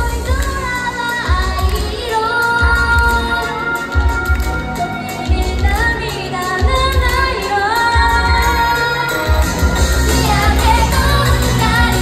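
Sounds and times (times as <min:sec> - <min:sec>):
women singing pop song: 0:00.0 - 0:12.0
pulsing bass beat: 0:09.2 - 0:12.0.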